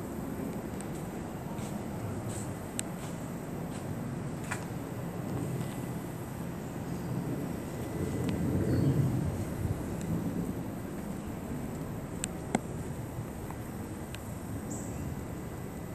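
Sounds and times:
low outdoor rumble: 0:00.0 - 0:15.9.

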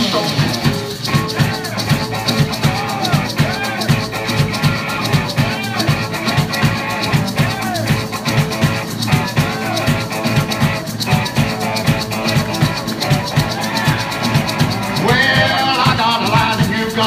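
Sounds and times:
drums: 0:00.0 - 0:17.0
electric guitar: 0:00.0 - 0:17.0
wailing harmonica: 0:00.0 - 0:17.0.

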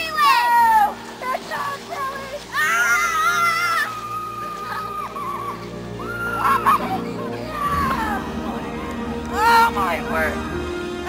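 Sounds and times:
child squealing: 0:02.6 - 0:08.2.

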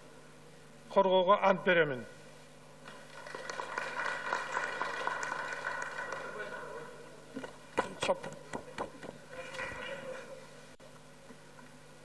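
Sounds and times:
many hands clapping: 0:02.9 - 0:06.9.

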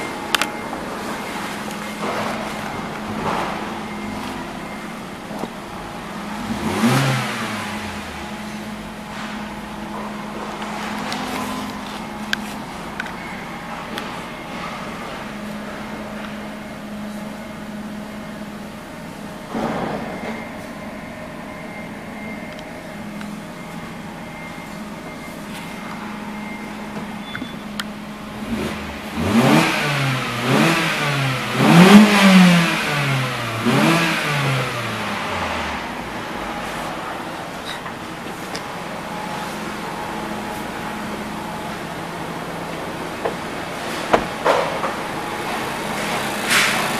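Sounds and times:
car engine idling and revving: 0:00.0 - 0:46.9.

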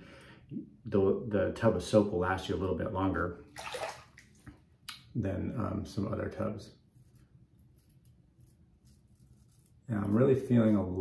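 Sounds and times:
razor scraping stubble: 0:06.9 - 0:11.0.

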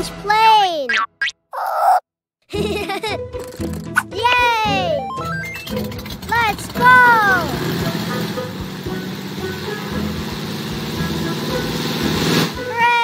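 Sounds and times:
background music: 0:02.5 - 0:13.0
cartoon propeller plane buzzing: 0:04.7 - 0:12.7.

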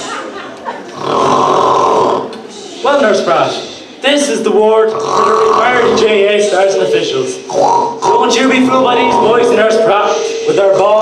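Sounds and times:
person talking: 0:08.0 - 0:11.0.

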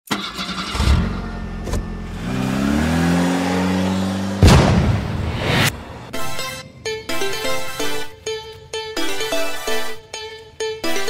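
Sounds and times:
engine starting and revving: 0:00.1 - 0:05.7.

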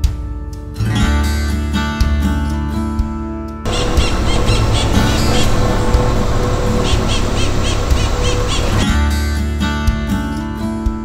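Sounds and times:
birds chirping: 0:03.7 - 0:08.9
rushing outdoor background: 0:03.7 - 0:09.0
acoustic guitar music: 0:03.7 - 0:09.8.

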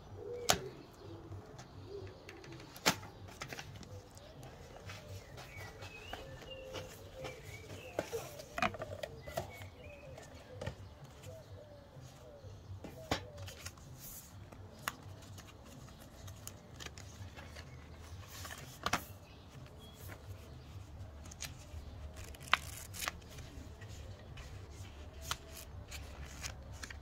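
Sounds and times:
paper pages rustling and flicking: 0:02.6 - 0:11.3, 0:13.0 - 0:27.0.

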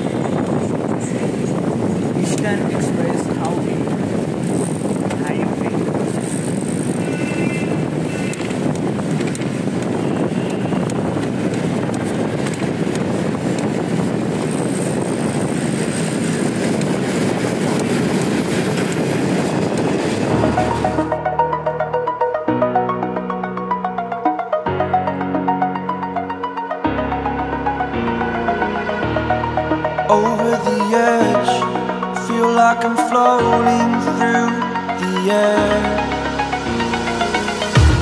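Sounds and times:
tyre and road noise: 0:00.0 - 0:21.5
wind rushing over microphone: 0:00.0 - 0:21.5
electronic music with a beat: 0:20.2 - 0:38.0.

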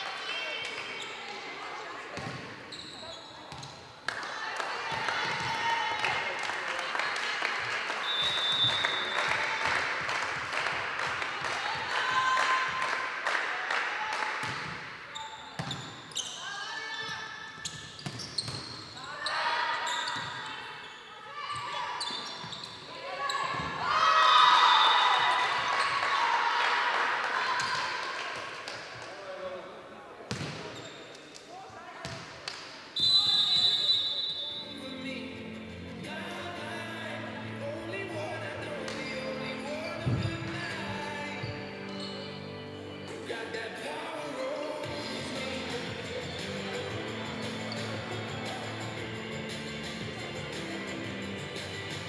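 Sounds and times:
people shouting in sports hall: 0:04.2 - 0:06.4, 0:11.3 - 0:14.4, 0:19.0 - 0:28.5.

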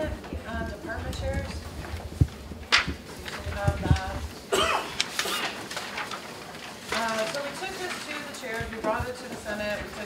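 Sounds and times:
person coughing: 0:04.5 - 0:05.6.

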